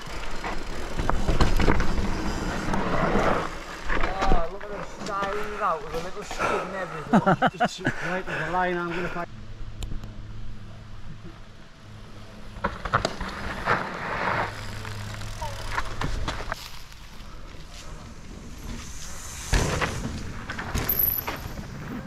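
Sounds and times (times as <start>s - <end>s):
bike clicks and rattles: 0.0s - 6.5s, 11.2s - 22.0s
tyres crunching on gravel: 12.5s - 19.1s.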